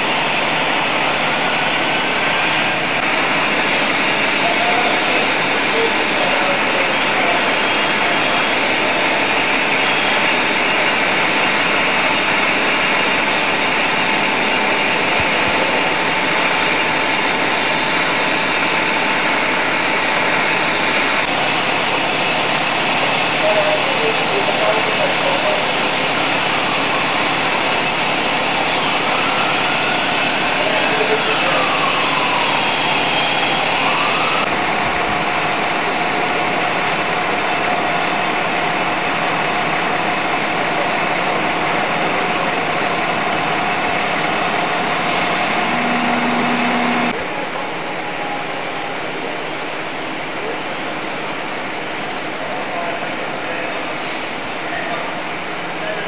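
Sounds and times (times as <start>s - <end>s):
fire engines running: 0.0s - 56.0s
faint siren rising and falling: 28.8s - 35.2s, 44.0s - 47.2s.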